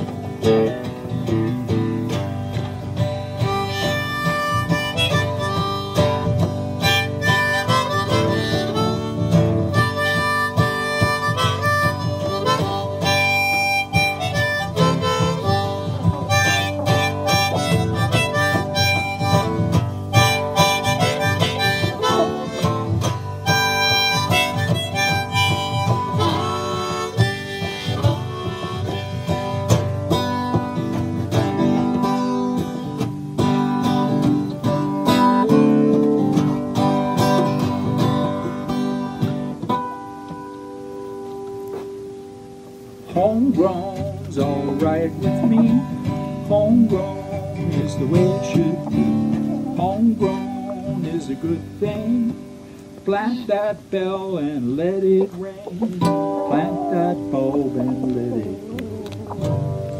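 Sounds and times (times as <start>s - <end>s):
strummed acoustic guitar: 0.0s - 59.9s
harmonica solo: 3.1s - 33.0s, 34.7s - 35.8s, 45.0s - 52.9s, 55.2s - 59.9s.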